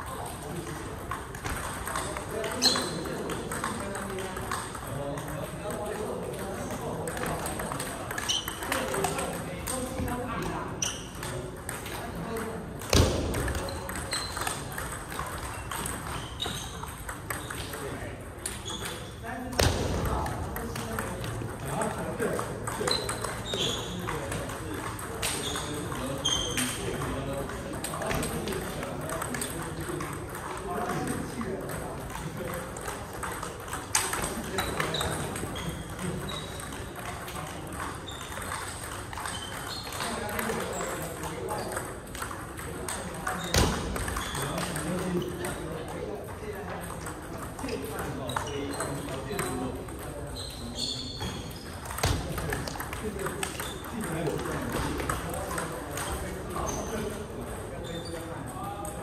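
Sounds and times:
ping-pong ball clicking: 0.1s - 59.0s.

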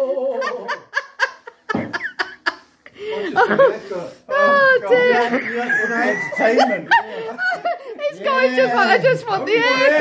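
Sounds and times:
hearty laughter: 0.0s - 3.9s, 5.1s - 8.0s.

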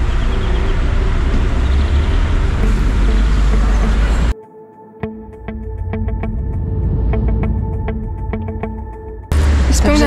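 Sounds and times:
road traffic rumble: 0.0s - 4.4s, 5.8s - 10.0s.

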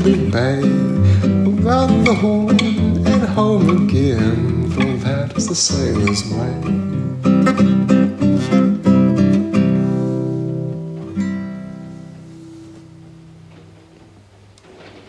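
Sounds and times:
acoustic guitar strumming: 0.0s - 14.2s.

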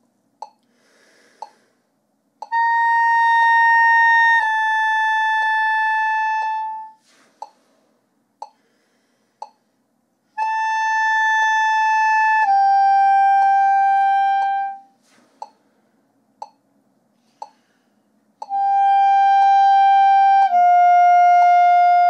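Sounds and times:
metronome clicking: 0.4s - 0.7s, 8.4s - 8.6s, 9.4s - 9.6s, 16.4s - 16.6s, 17.4s - 17.7s, 18.4s - 19.7s
clarinet playing high notes: 2.4s - 7.0s, 10.4s - 14.9s, 18.4s - 22.0s.

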